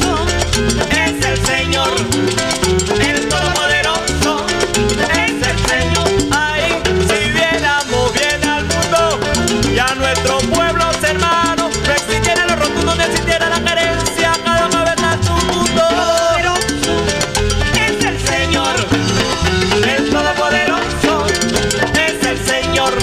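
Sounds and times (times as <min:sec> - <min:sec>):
bass guitar: 0:00.0 - 0:23.0
maracas: 0:00.0 - 0:23.0
melody with sliding notes: 0:15.9 - 0:22.1.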